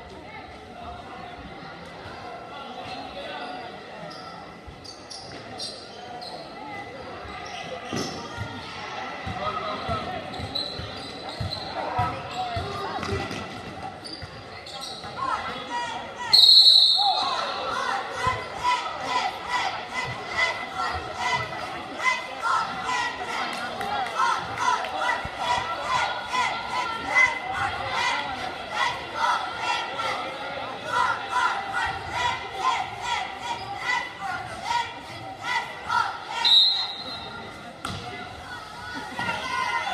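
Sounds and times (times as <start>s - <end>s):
spectators' voices echoing: 0.0s - 39.9s
referee's whistle blast: 16.3s - 17.4s, 36.4s - 37.4s.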